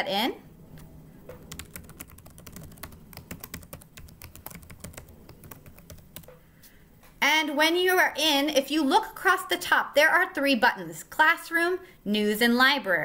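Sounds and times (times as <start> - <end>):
keyboard typing clicks: 1.4 - 6.4.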